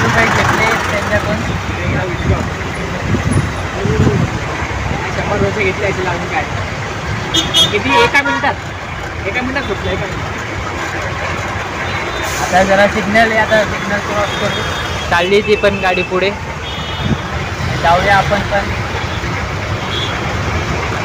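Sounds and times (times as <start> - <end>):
people's voices: 0.0 - 19.6
road and traffic noise: 0.0 - 21.0.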